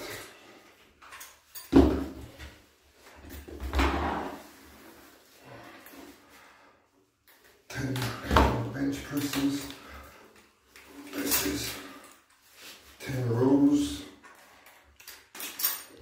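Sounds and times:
bar and metal clips rattling: 0:14.3 - 0:16.0.

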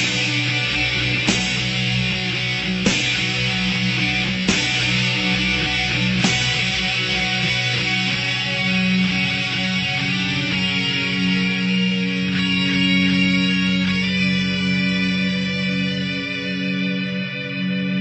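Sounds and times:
distorted electric guitars: 0:00.0 - 0:18.0.

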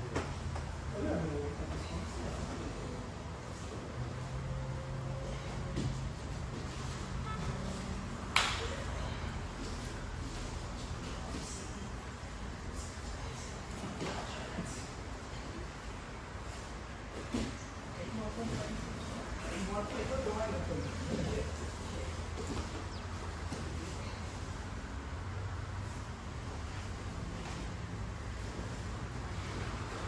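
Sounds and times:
steady low hum: 0:00.0 - 0:30.0
sharp hand slap: 0:08.3 - 0:08.8.

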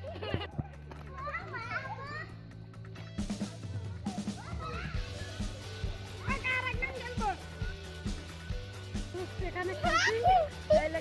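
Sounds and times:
background music low notes: 0:00.0 - 0:11.0
children calling out: 0:03.4 - 0:06.6.

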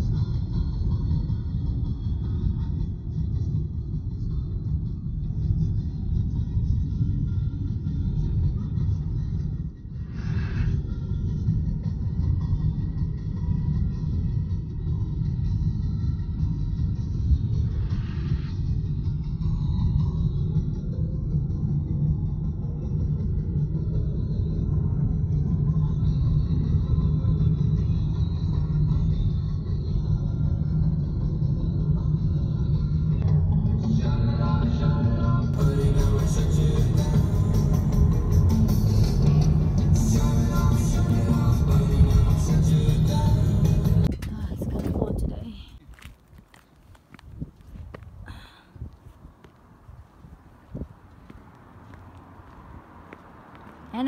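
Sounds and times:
car cabin road rumble: 0:00.0 - 0:10.1, 0:35.5 - 0:54.0.

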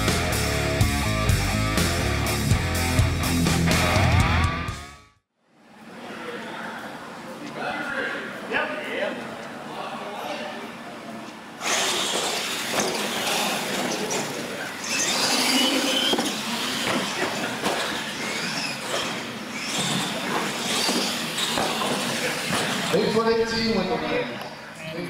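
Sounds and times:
electric motors whining: 0:11.6 - 0:23.1.

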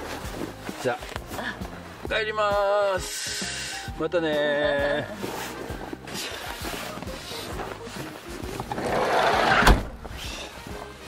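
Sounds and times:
footsteps and movement knocks: 0:00.0 - 0:02.1, 0:04.6 - 0:11.0
background music: 0:00.0 - 0:11.0
sliding van door rolling shut: 0:08.7 - 0:10.1.

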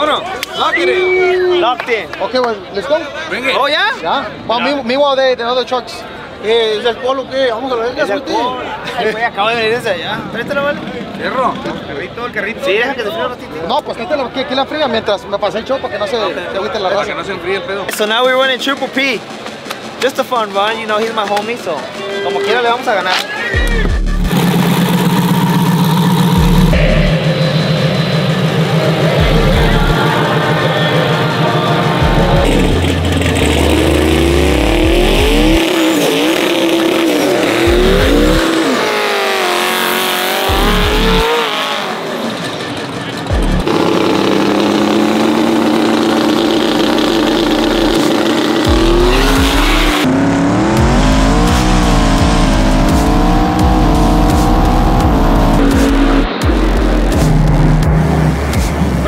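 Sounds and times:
truck engine revving hard: 0:23.9 - 0:59.0.

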